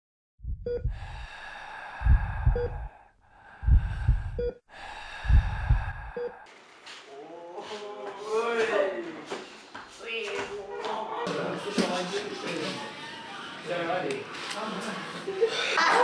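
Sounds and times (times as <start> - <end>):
heartbeat thuds: 0.4 - 1.2, 2.0 - 2.9, 3.6 - 4.6, 5.2 - 6.3
heart monitor beeping: 0.4 - 1.3, 2.0 - 2.9, 3.6 - 6.4
loud hissing breaths: 0.9 - 6.5.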